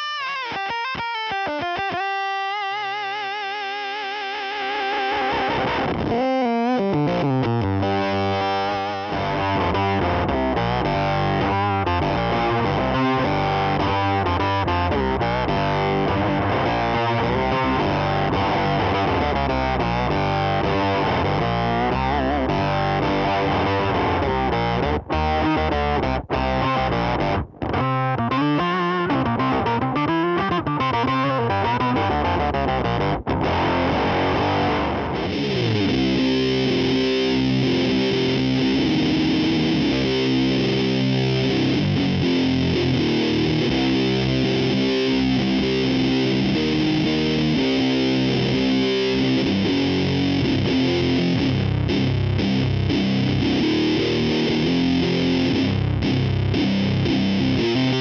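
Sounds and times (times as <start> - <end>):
distorted electric guitar: 0.0 - 58.0.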